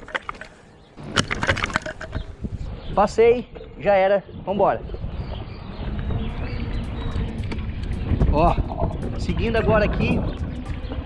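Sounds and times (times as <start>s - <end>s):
wind buffeting microphone: 1.0s - 11.0s
bike tyres rolling on asphalt: 4.9s - 11.0s.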